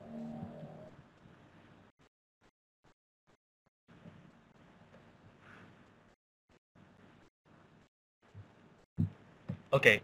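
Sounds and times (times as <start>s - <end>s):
held low film soundtrack tones: 0.0s - 2.1s.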